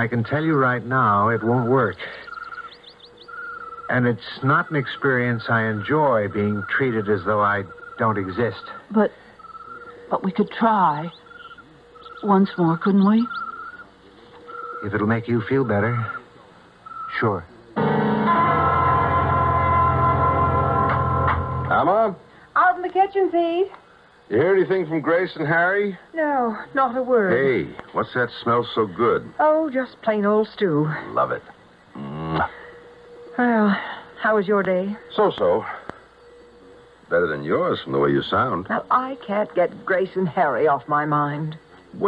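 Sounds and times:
birds chirping: 0.0 - 42.0
rapid trilled bird call: 2.2 - 4.1, 4.7 - 8.8, 9.4 - 16.2
woman speaking: 10.1 - 11.2, 12.1 - 13.4, 22.6 - 23.8, 26.1 - 27.4, 29.4 - 31.0, 33.4 - 35.0, 38.7 - 41.6
music bridge chord over bass: 17.8 - 21.8.

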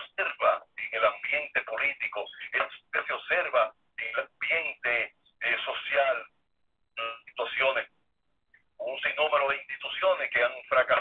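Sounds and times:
person speaking over a telephone: 0.0 - 6.3, 7.0 - 8.0, 8.8 - 11.0.

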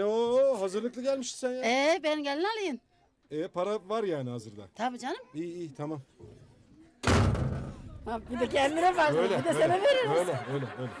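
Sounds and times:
door slamming shut: 7.0 - 8.3.

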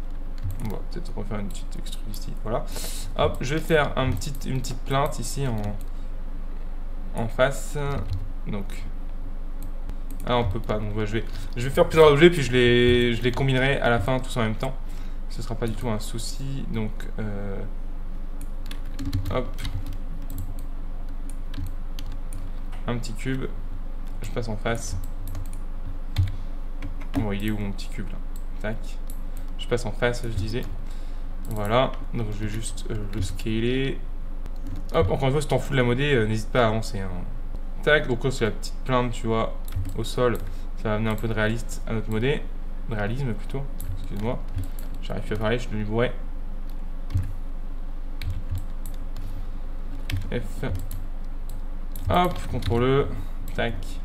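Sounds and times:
computer keyboard keys clicking: 0.0 - 0.8, 3.6 - 5.9, 18.4 - 20.7, 21.3 - 22.5, 24.8 - 25.6, 26.2 - 27.6, 34.6 - 35.2, 39.6 - 40.5, 43.8 - 45.5, 47.1 - 47.3, 48.2 - 49.0, 49.9 - 52.8
low steady hum: 0.0 - 54.0
keyboard key presses: 18.6 - 20.5, 39.7 - 40.5, 47.1 - 47.3, 48.2 - 49.0.

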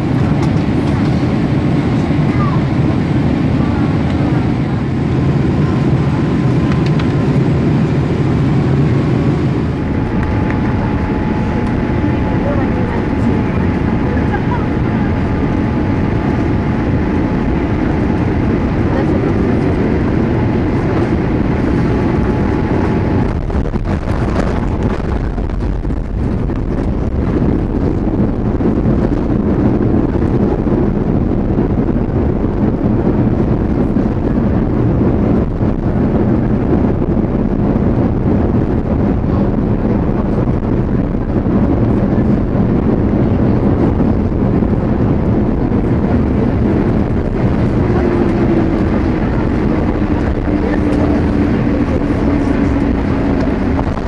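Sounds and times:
airliner engine roar in cabin: 0.0 - 54.0.

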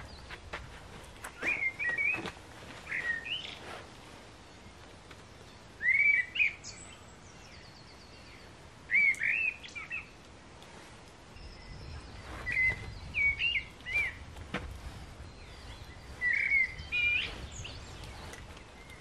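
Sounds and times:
songbird singing: 0.0 - 19.0.

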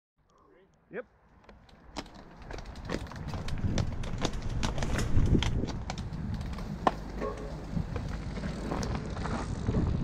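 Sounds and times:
small clicks and rattles: 1.4 - 6.7
bike tyres rolling on dirt: 1.4 - 10.0
wind rumble on microphone: 2.5 - 10.0.

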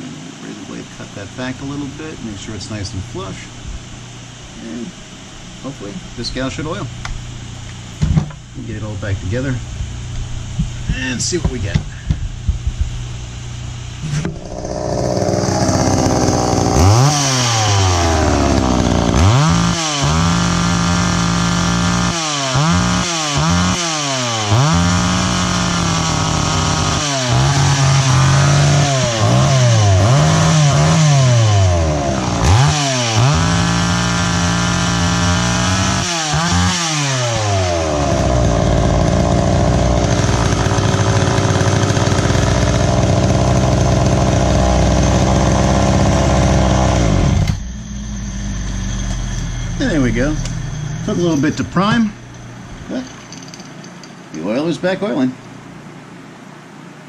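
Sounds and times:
chainsaw revving: 14.0 - 47.7.

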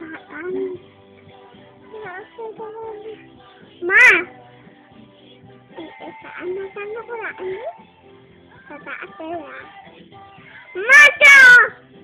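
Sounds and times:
girl singing held notes: 1.9 - 4.4, 5.7 - 7.8, 8.6 - 11.8.

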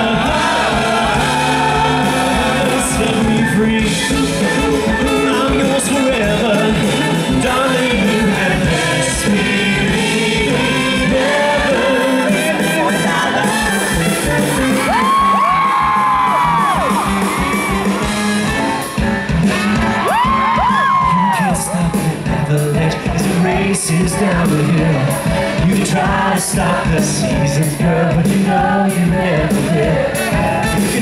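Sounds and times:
live band playing show tune: 0.0 - 31.0
high whooping voices: 10.6 - 22.2.

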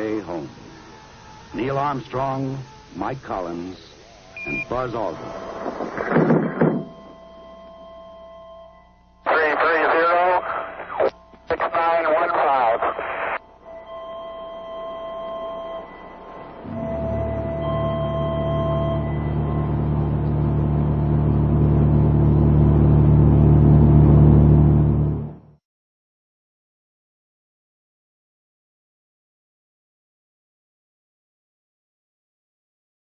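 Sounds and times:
garbled voice over radio: 9.3 - 13.4
low sustained drone: 13.4 - 25.5.

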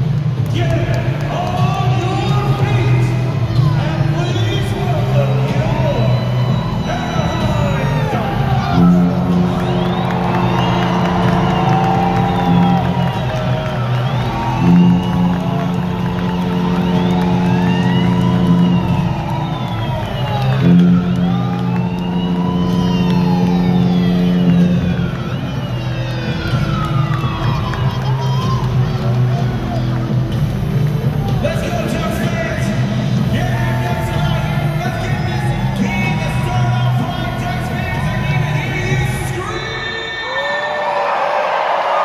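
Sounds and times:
synthesizer chords: 0.0 - 39.2
siren-like sweeping tones: 4.7 - 27.5.

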